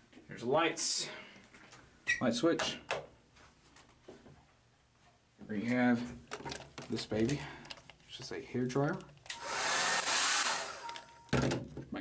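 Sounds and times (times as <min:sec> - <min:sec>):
hair dryer blowing air: 0:09.3 - 0:11.0
hair dryer spinning down whine: 0:09.4 - 0:11.0.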